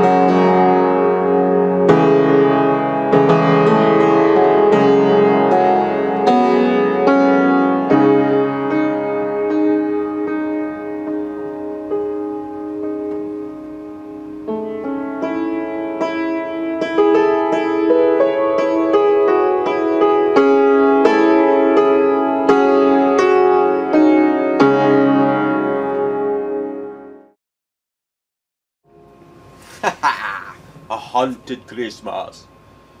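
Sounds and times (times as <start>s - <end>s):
out-of-tune piano playing: 0.0s - 27.4s, 28.9s - 29.6s.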